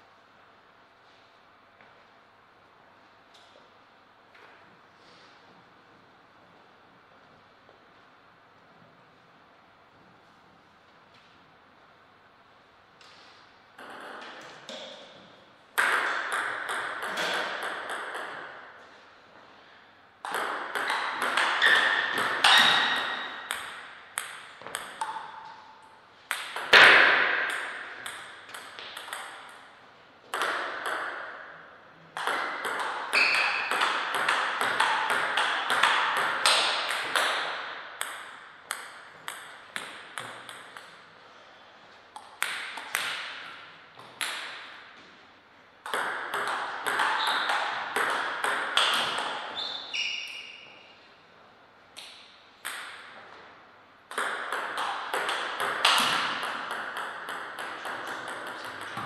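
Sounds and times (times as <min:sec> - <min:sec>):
table tennis ball clicking: 0:45.8 - 0:49.5.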